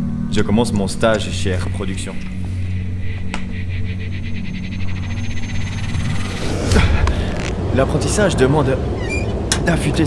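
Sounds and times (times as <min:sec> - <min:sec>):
rapid pulsed trill: 0:00.0 - 0:07.5
low steady hum: 0:00.0 - 0:10.0.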